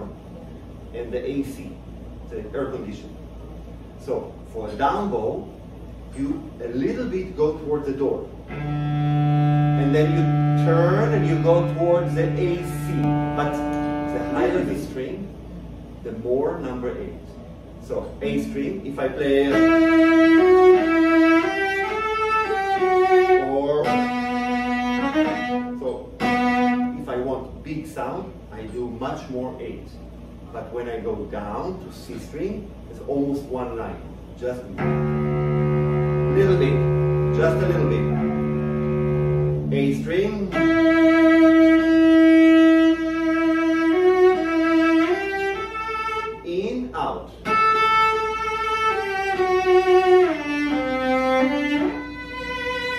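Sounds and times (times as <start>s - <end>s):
cello bowed phrase: 8.5s - 15.3s, 18.2s - 27.4s, 34.8s - 52.9s.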